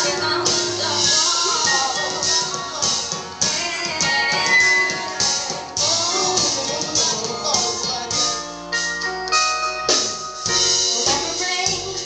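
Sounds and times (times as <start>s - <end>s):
drums steady beat: 0.0s - 12.0s
live band playing: 0.0s - 12.0s.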